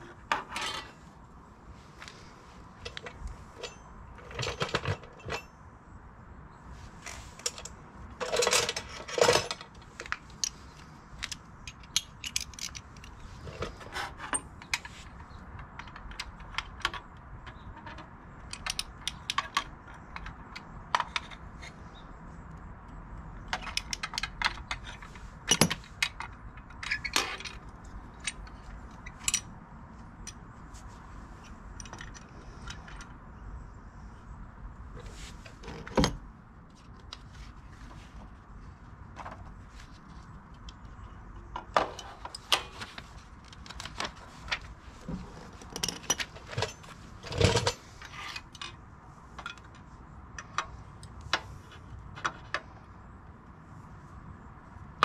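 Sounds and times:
metal tools clinking: 0.2 - 1.1, 2.8 - 5.7, 7.0 - 21.4, 23.6 - 29.5, 45.2 - 48.8.

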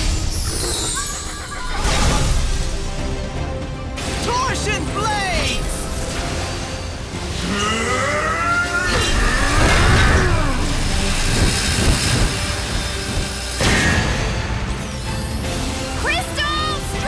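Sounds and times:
background music: 0.0 - 17.0
layered battle clash: 0.0 - 17.0.

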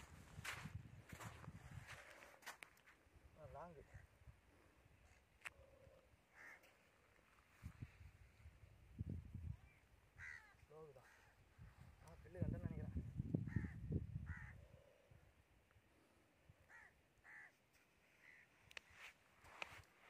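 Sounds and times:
short bird calls: 5.5 - 7.2, 16.7 - 19.0.

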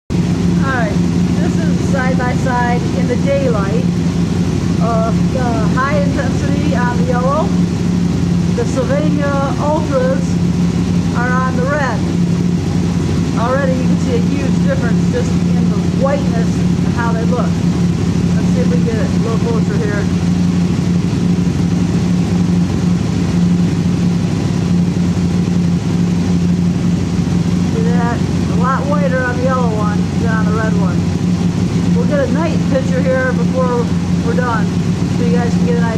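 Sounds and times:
engine idling: 0.1 - 35.9
steady low hum: 0.1 - 35.9.

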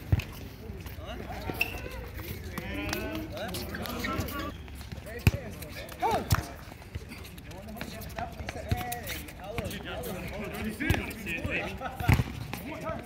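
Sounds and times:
ball being kicked: 4.9 - 6.7, 12.0 - 12.6
players shouting: 5.8 - 6.6.

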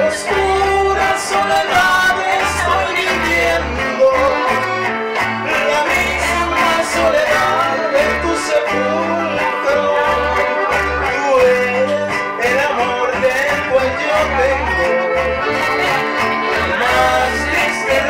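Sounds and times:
accordion: 0.0 - 18.0
acoustic guitar: 0.0 - 18.0
electric bass: 0.0 - 18.0.

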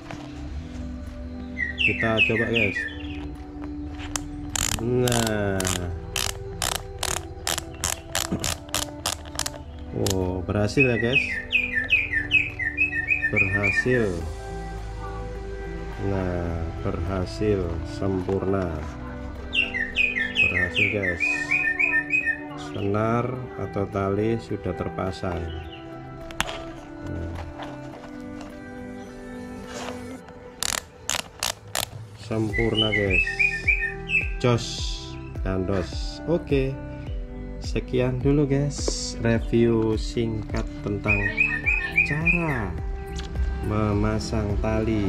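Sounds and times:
background music: 0.0 - 45.0
ratchet dial clicking: 4.1 - 10.2, 30.6 - 32.0.

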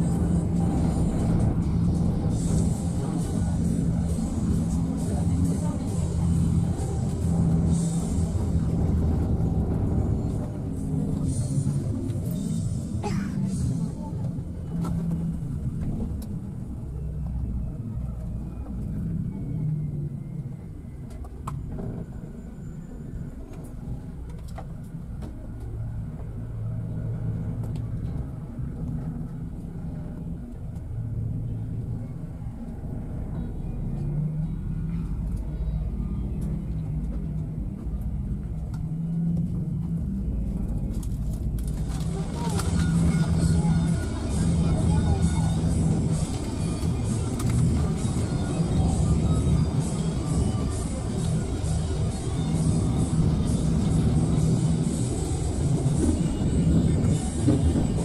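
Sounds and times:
bus engine and road rumble: 0.0 - 58.0.

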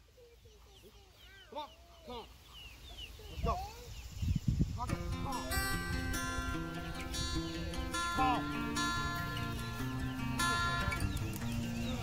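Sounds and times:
acoustic guitar music: 4.8 - 12.0.

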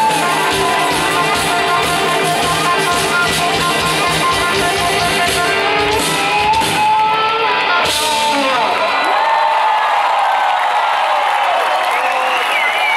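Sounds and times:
crowd cheering and whooping: 0.0 - 3.0, 7.6 - 12.9
live band final hit: 0.0 - 8.9.

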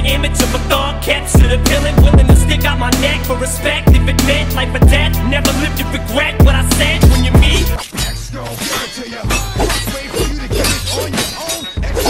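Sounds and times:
hip hop backing track: 0.0 - 12.0.

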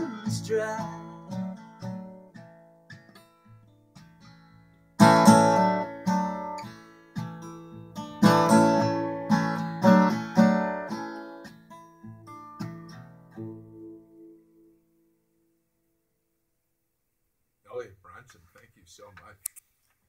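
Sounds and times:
acoustic guitar strummed chords: 0.0 - 15.2
acoustic guitar picked notes: 0.0 - 15.6.

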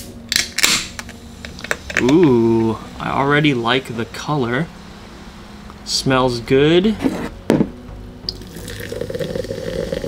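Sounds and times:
drink pouring into glass: 8.3 - 10.0.

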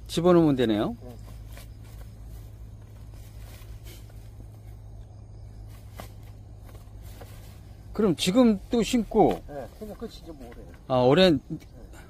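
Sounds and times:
steady low rumble: 0.0 - 12.0
tool scuffing through plastic mulch: 1.4 - 4.7.

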